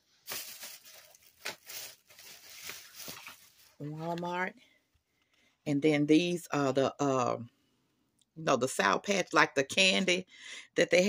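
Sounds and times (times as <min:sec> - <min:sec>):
gift box rustling and scraping: 0:00.5 - 0:04.2.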